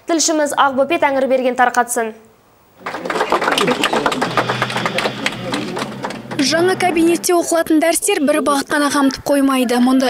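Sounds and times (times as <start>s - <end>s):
voices: 2.8s - 10.0s.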